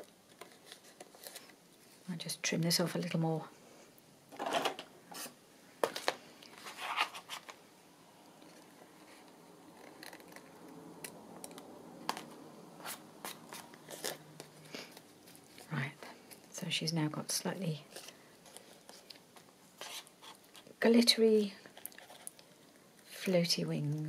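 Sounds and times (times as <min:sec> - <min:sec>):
paper being handled: 0:06.0 - 0:07.6.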